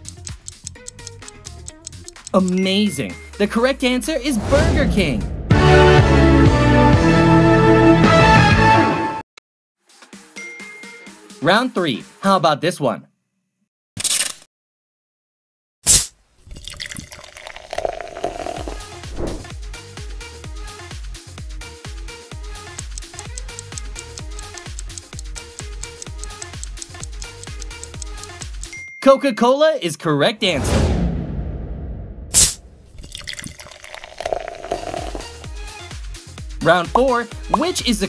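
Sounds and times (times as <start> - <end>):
drink pouring and fizzing: 16.4 - 19.4, 32.4 - 35.4
fizzy drink opening hiss: 16.8 - 19.4, 32.4 - 35.3.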